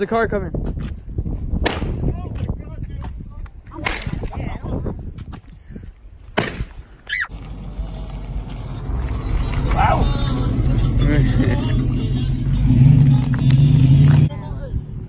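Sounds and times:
low rumble: 7.3 - 15.0.

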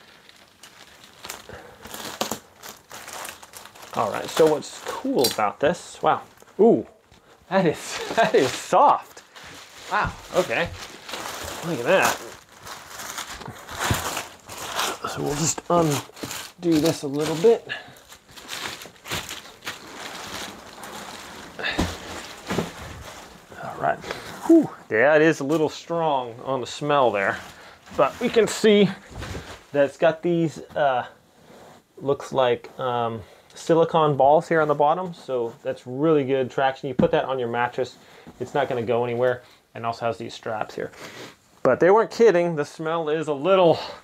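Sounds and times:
plastic wrapping crinkling: 0.0 - 24.7, 25.3 - 30.1.

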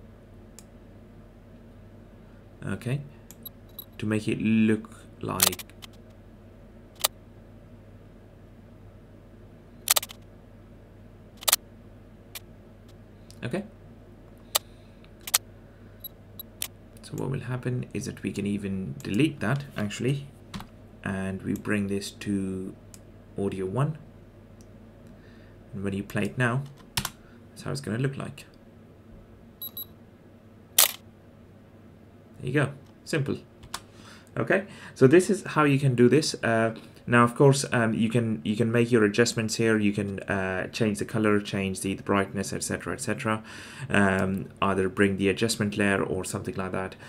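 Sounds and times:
faint steady hum: 0.0 - 47.0
camera shutter clicks: 9.9 - 10.2, 30.8 - 31.0.

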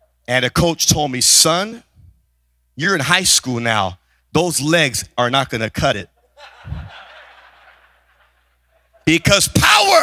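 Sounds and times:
congregation laughing: 6.2 - 9.4.

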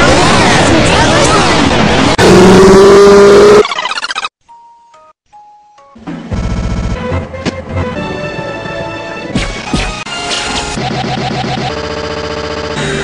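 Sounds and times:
music: 4.5 - 10.9.

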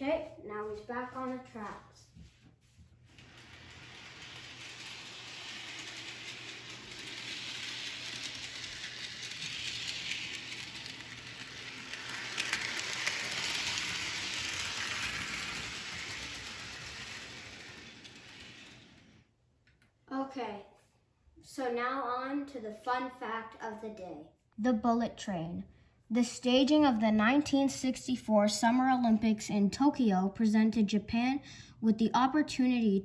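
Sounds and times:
model train wheels on rails: 3.0 - 19.3, 26.2 - 31.4
model train motor whirring: 3.1 - 19.2.

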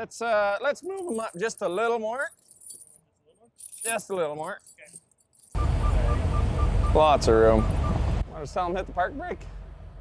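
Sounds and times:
diesel truck engine running: 5.6 - 10.0.

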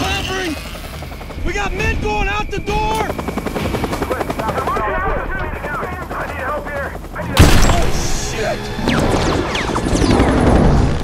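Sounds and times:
helicopter rumble: 0.0 - 11.0.

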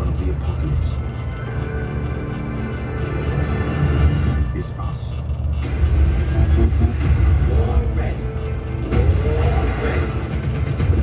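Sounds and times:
heavy low rumble: 0.0 - 11.0.

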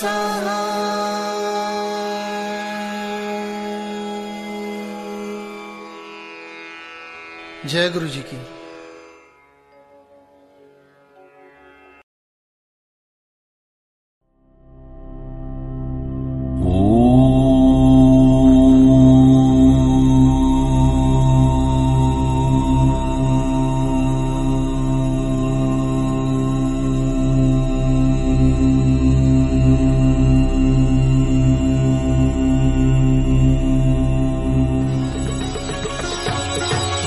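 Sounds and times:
person chanting a mantra: 0.0 - 5.9, 16.5 - 36.3
steady drone: 0.0 - 9.6, 14.9 - 37.0.

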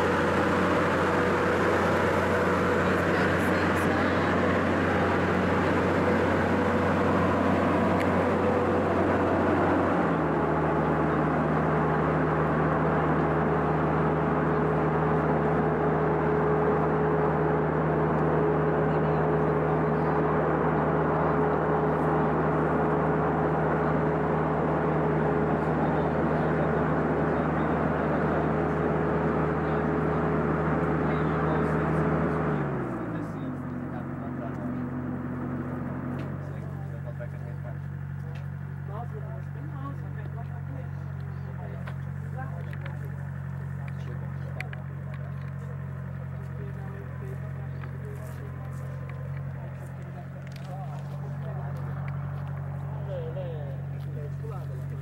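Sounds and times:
tractor engine running: 0.0 - 55.0.

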